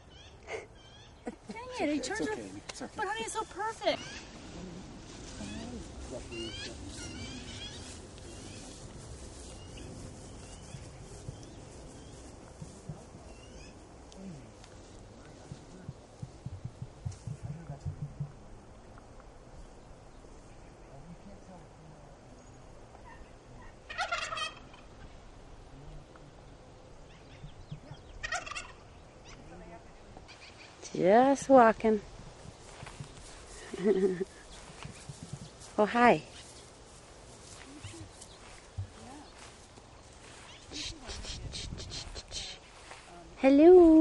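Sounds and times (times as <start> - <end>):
footsteps swishing through grass: 3.6 - 13.7, 32.1 - 44.0
turkey gobbling: 3.9 - 8.7, 23.0 - 25.2, 28.2 - 29.4.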